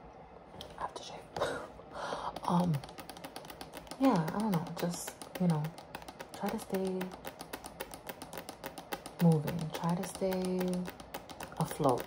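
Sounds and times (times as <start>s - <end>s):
fingernails tapping: 2.2s - 12.0s.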